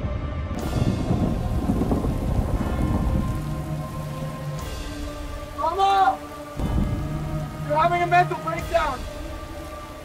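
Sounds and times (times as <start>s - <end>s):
deep low rumble: 0.7s - 5.4s
heavy pouring water: 0.9s - 10.0s.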